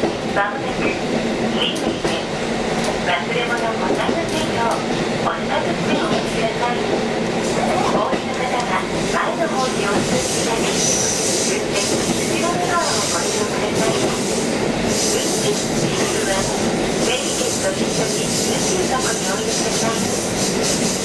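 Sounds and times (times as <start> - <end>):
train wheels on rails: 0.0 - 21.0.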